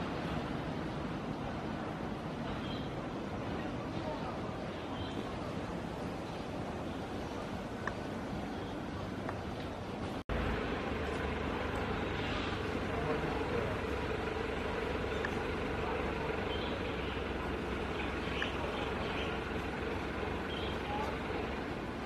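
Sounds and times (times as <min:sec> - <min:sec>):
distant traffic rumble: 0:00.0 - 0:22.0
faint steady hum: 0:00.0 - 0:22.0
faint indistinct voices: 0:02.1 - 0:10.1, 0:11.6 - 0:22.0.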